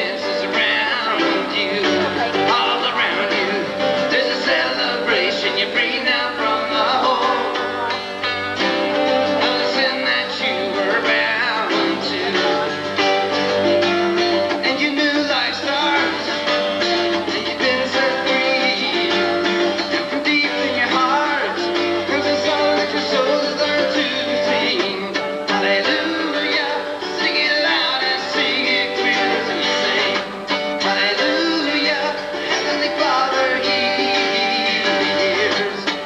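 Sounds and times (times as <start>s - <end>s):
acoustic guitars strummed: 0.0s - 36.0s
person singing: 0.0s - 36.0s.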